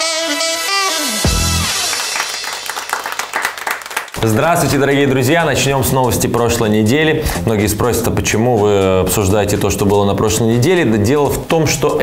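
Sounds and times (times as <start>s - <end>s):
applause: 1.6s - 4.4s.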